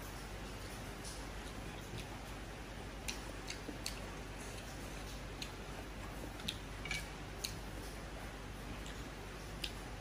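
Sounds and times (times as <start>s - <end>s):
steady low hum: 0.0s - 10.0s
chewing noodles: 0.4s - 10.0s.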